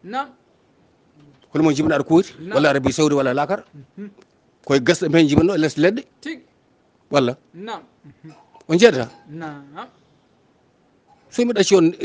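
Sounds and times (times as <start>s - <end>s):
man speaking: 1.6s - 3.8s, 4.7s - 6.2s, 7.1s - 7.4s, 8.7s - 9.2s, 11.3s - 12.0s.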